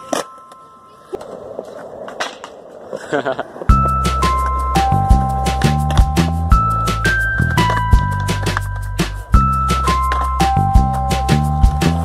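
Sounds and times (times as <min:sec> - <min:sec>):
skateboard wheels rolling on concrete: 0:00.0 - 0:12.0.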